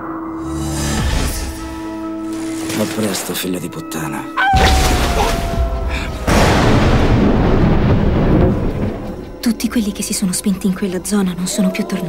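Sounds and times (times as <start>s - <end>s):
loud thunder-like rumble: 4.8s - 9.6s.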